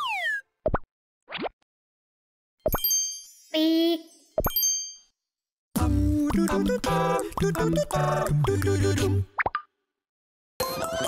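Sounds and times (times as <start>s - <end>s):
bell-like ding: 2.7s - 3.6s, 4.2s - 5.1s
children's song: 5.8s - 9.3s
pitched vocal sound: 5.8s - 9.3s.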